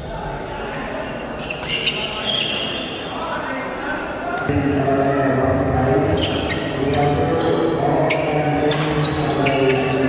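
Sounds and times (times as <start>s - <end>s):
crowd voices: 0.0s - 10.0s
shoes squeaking on court: 1.3s - 3.3s, 6.1s - 10.0s.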